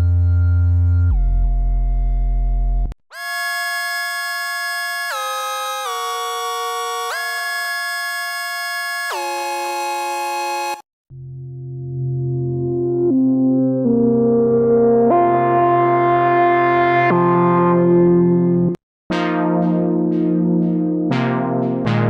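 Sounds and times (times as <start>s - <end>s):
buzzy synthesizer lead tone: 3.2s - 10.8s, 12.1s - 22.0s
low dark synthesizer drone: 11.1s - 22.0s.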